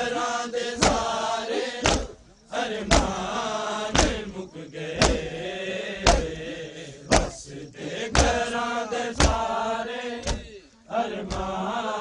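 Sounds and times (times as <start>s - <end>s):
crowd of men chanting: 0.0s - 12.0s
collective chest slaps: 0.8s - 1.2s, 1.8s - 4.4s, 5.0s - 5.4s, 6.0s - 6.5s, 7.1s - 7.5s, 8.1s - 8.5s, 9.2s - 9.5s, 10.2s - 10.6s, 11.2s - 11.6s.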